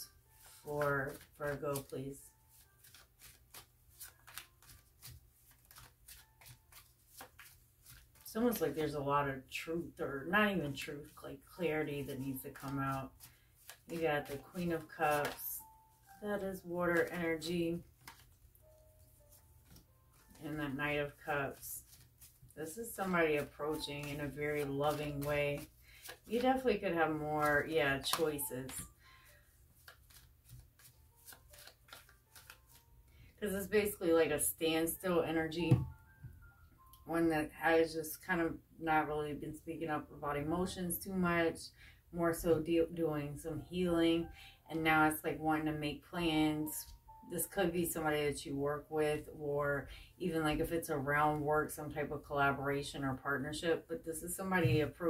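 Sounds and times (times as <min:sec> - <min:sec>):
cards being shuffled: 0:00.4 - 0:08.7, 0:11.9 - 0:15.5, 0:16.9 - 0:32.9.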